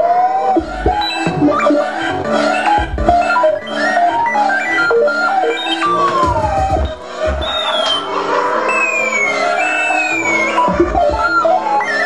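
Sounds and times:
electronic tones sliding downward: 0:00.5 - 0:08.0, 0:08.7 - 0:12.0
low rumbling thuds: 0:02.8 - 0:03.2.

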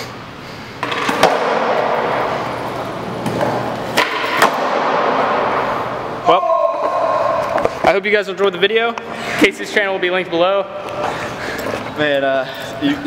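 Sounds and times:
skateboard clacking: 0:00.8 - 0:05.3
skateboard wheels rolling on concrete: 0:00.8 - 0:06.0.

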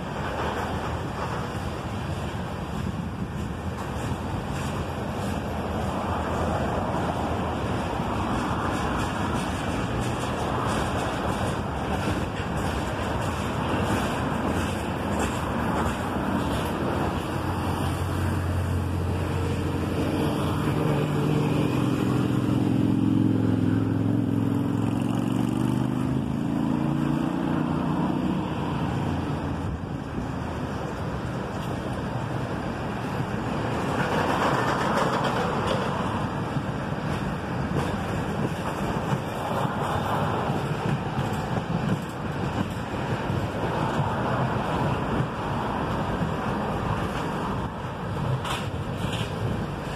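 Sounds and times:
freight train wheels clattering: 0:00.0 - 0:23.0, 0:28.0 - 0:49.9.

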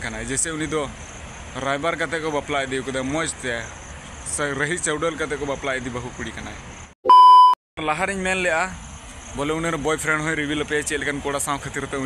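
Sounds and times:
speech: 0:00.0 - 0:01.0, 0:01.6 - 0:03.7, 0:04.3 - 0:06.6, 0:07.8 - 0:08.8, 0:09.4 - 0:12.0
censor bleep: 0:07.0 - 0:07.6.

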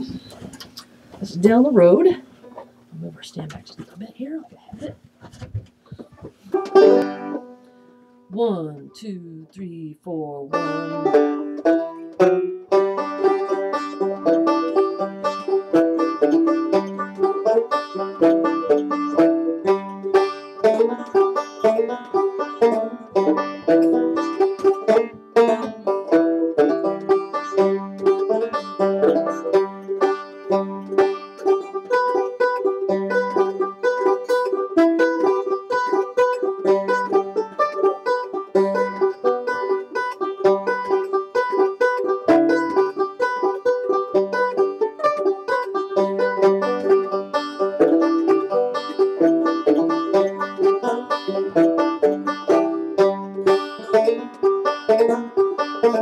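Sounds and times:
banjos playing: 0:05.2 - 0:08.5, 0:10.4 - 0:56.0.

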